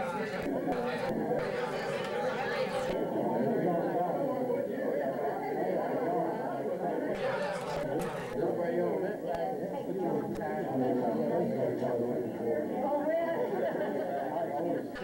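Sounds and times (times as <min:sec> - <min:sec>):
chatter of many people: 0:00.0 - 0:15.0.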